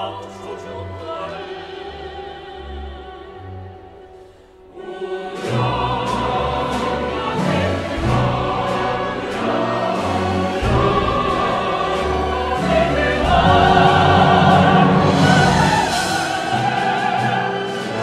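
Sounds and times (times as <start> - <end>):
choir singing: 0.0 - 18.0
symphony orchestra playing: 4.8 - 18.0.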